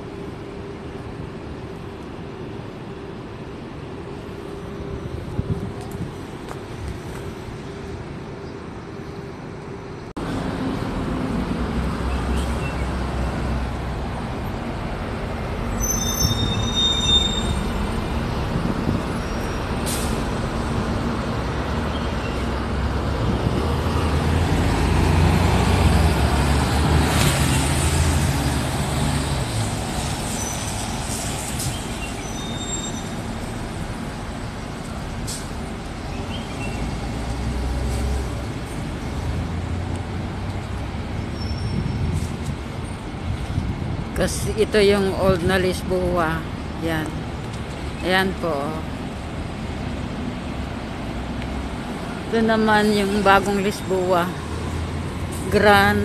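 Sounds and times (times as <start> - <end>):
bus driving past: 0.0 - 56.0
low rumble of passing vehicles: 0.0 - 56.0.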